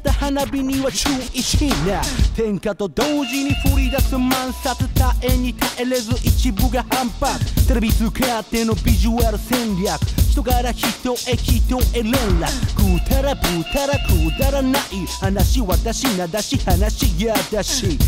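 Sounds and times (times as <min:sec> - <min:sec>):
rapping over a drum beat: 0:00.0 - 0:18.0
deep bass hits: 0:11.4 - 0:16.0.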